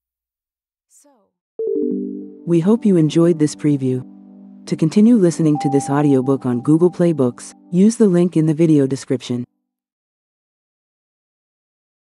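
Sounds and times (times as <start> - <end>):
electronic chime chord: 1.6 - 3.2, 3.8 - 7.9.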